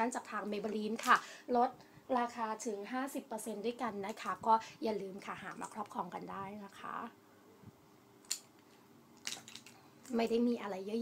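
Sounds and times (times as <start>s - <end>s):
woman talking: 0.0s - 7.2s, 10.1s - 11.0s.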